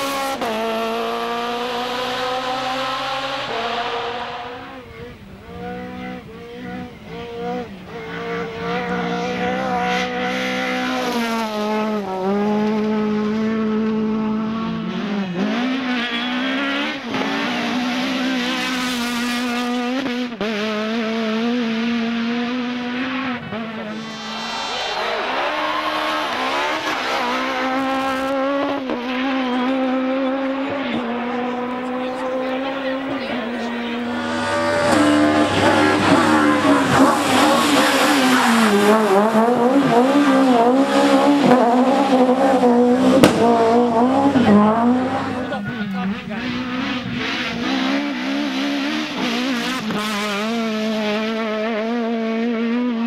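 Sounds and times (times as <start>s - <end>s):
rally car engines revving: 0.0s - 53.0s.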